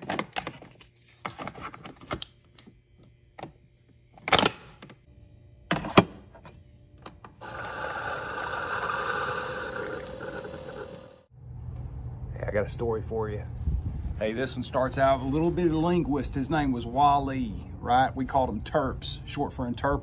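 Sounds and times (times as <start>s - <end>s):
coffee streaming into a mug: 7.4s - 11.2s
coffee maker pump humming: 7.4s - 11.3s.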